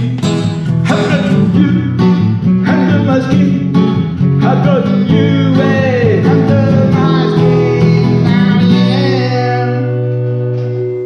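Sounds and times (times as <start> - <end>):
acoustic guitar strummed: 0.0 - 11.0
person singing: 0.0 - 11.0.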